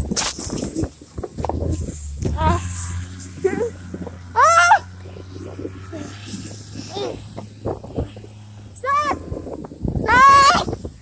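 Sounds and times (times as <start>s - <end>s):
sled hissing and scraping through snow: 0.0s - 11.0s
low steady drone: 1.4s - 10.1s.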